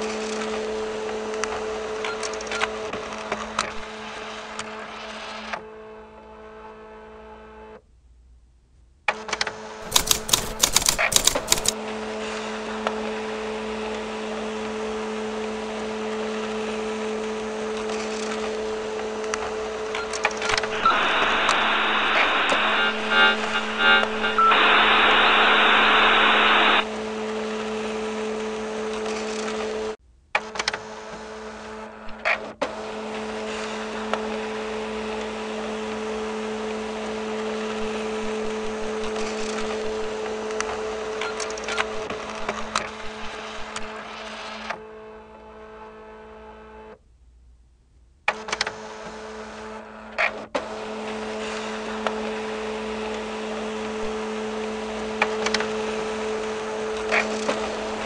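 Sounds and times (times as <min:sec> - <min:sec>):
dial-up modem hiss: 0:09.8 - 0:11.8, 0:20.4 - 0:26.9, 0:37.8 - 0:40.1, 0:41.8 - 0:43.9
short clicks: 0:09.8 - 0:11.8, 0:20.5 - 0:26.8
two-tone electrical hum: 0:09.8 - 0:11.8, 0:20.4 - 0:26.9.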